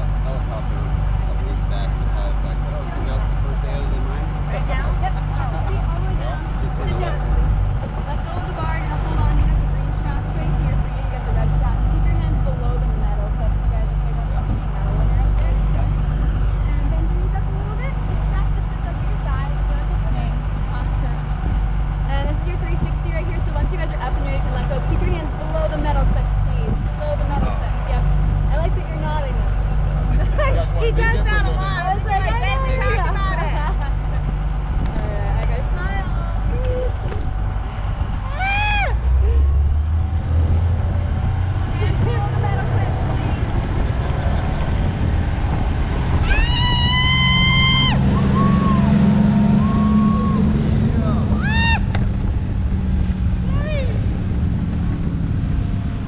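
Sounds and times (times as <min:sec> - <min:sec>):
voices: 0:00.0 - 0:55.2
boat engine running: 0:00.0 - 0:56.0
loud high cry: 0:38.2 - 0:39.1, 0:46.2 - 0:48.9, 0:51.3 - 0:51.9.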